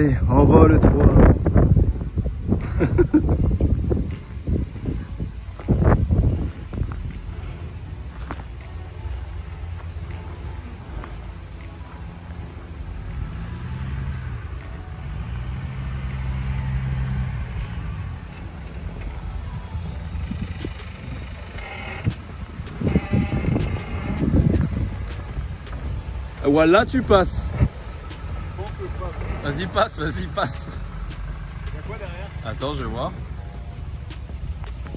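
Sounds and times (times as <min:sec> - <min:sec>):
car engine revving: 0:03.8 - 0:34.9.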